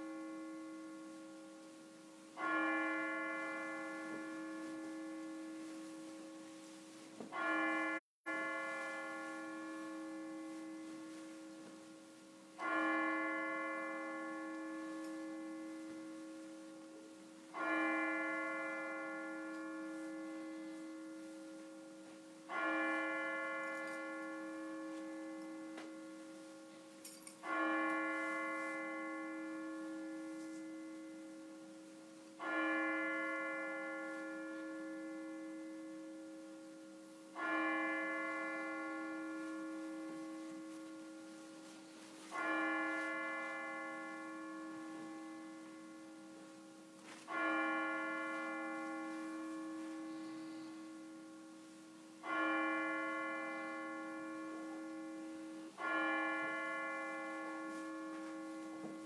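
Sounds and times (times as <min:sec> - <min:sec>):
church bell tolling: 0:00.0 - 0:59.0.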